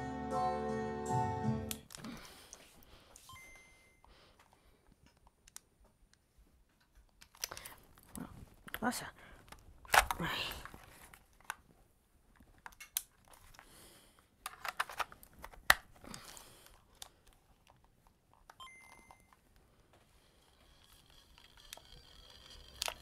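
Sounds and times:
hands clicking and rustling: 4.3s - 13.8s, 14.4s - 18.6s.

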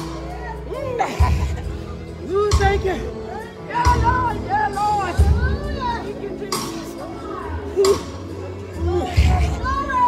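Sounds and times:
gospel band playing: 0.0s - 10.0s.

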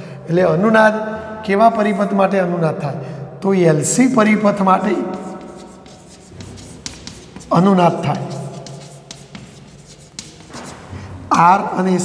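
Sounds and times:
chalk scratching on blackboard: 4.8s - 11.0s.

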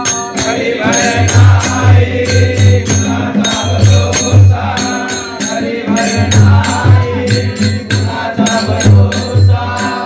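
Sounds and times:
jingling percussion: 0.0s - 10.0s
men singing together: 0.0s - 10.0s
tabla bass strokes: 0.5s - 10.0s.

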